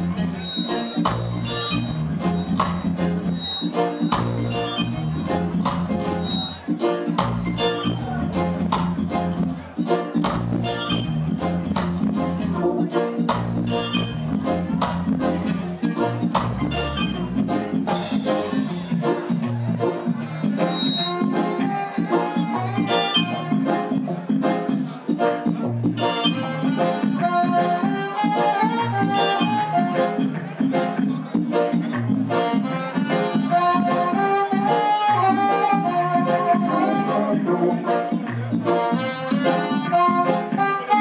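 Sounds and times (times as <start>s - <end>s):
live reggae band: 0.0s - 41.0s
saxophone melody: 20.7s - 24.2s, 26.0s - 30.4s, 32.3s - 38.1s, 38.7s - 41.0s.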